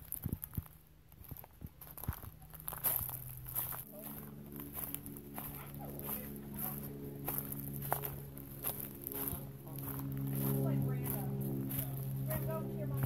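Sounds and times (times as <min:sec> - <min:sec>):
footsteps crunching through dry leaves: 0:00.0 - 0:13.0
steady low hum: 0:00.0 - 0:13.0.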